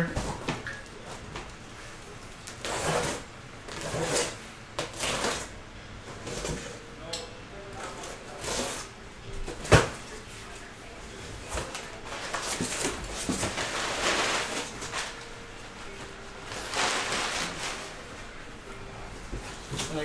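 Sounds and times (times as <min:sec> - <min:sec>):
cardboard scraping and rustling: 0:02.6 - 0:05.5, 0:11.4 - 0:15.2, 0:16.5 - 0:18.0.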